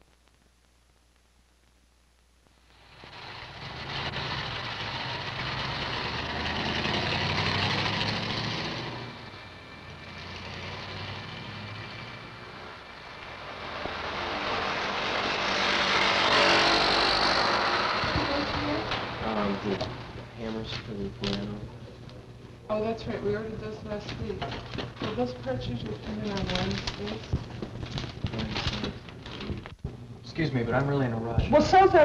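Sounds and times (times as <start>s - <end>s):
passing cars and trucks: 2.8s - 20.6s.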